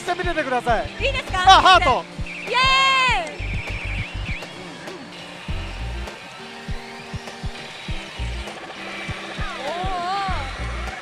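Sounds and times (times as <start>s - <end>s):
game machine music: 0.0s - 11.0s
held synth tones: 1.0s - 11.0s.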